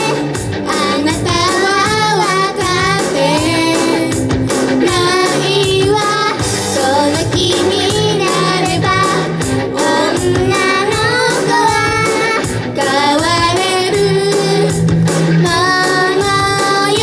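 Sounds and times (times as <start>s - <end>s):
backing track with steady beat: 0.0s - 17.0s
girls singing into microphones: 0.0s - 17.0s.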